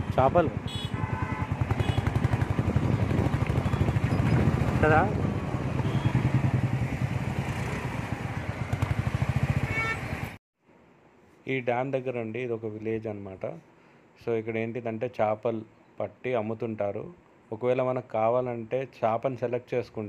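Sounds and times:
motorcycle engine running: 0:00.0 - 0:10.4.

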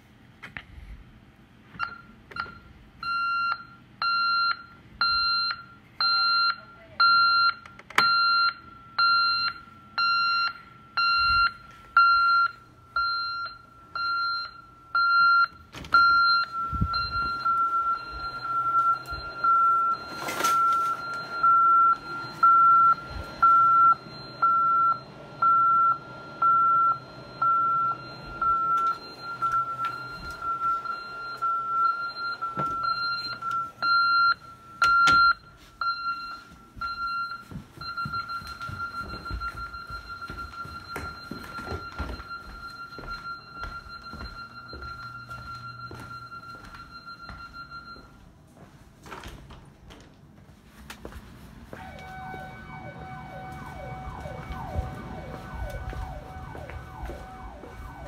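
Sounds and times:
alarm keypad beeps: 0:01.8 - 0:48.2, 0:51.8 - 0:58.0.

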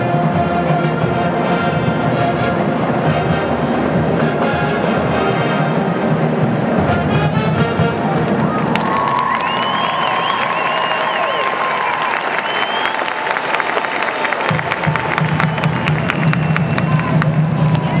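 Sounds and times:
stadium crowd cheering: 0:07.5 - 0:18.0
sharp hand claps: 0:08.3 - 0:18.0.

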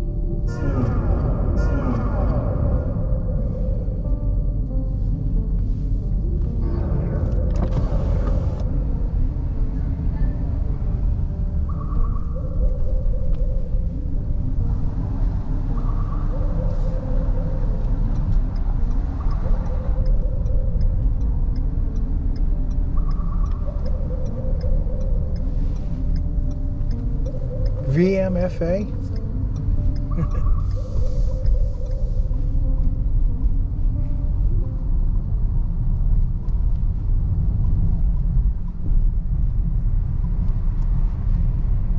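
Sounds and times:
car road and engine rumble: 0:00.0 - 0:41.9
music from car stereo: 0:00.0 - 0:41.9.

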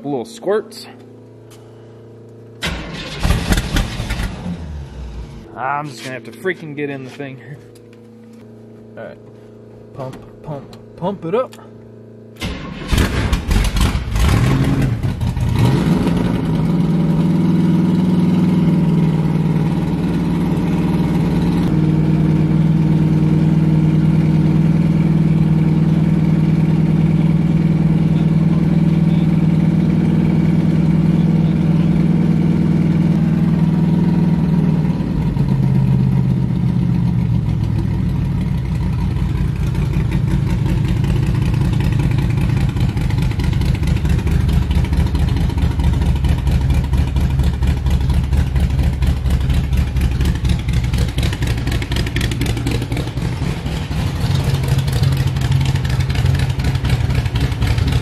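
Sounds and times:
car engine idling roughly: 0:35.4 - 0:58.0.

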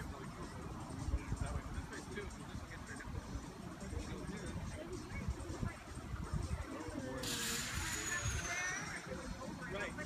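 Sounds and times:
distant people talking: 0:00.0 - 0:10.0.

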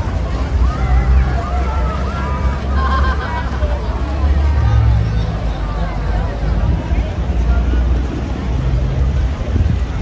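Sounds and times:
boat engine rumble: 0:00.0 - 0:10.0
chatter of many voices: 0:00.0 - 0:10.0.

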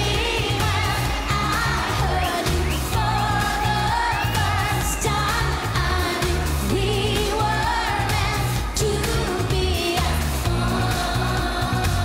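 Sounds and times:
dance-pop band playing: 0:00.0 - 0:12.0
pulsing bass line: 0:00.0 - 0:12.0
woman singing: 0:00.0 - 0:12.0.

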